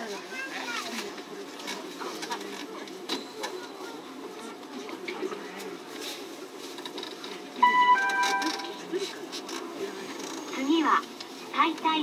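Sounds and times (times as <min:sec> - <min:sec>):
loud electronic chime: 0:07.6 - 0:08.9.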